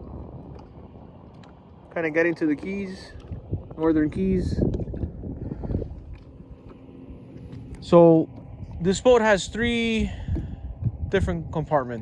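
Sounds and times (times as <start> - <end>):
water lapping against boat hull: 0.0 - 12.0
wind buffeting microphone: 0.0 - 12.0.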